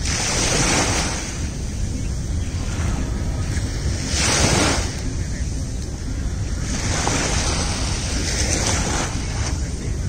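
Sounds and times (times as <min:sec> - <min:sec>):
sea waves washing on shore: 0:00.0 - 0:10.0
wind buffeting microphone: 0:00.0 - 0:10.0.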